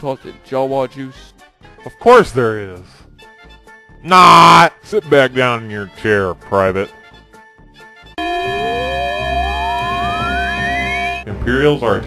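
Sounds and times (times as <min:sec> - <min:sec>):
alarm siren wailing: 0:08.2 - 0:11.3.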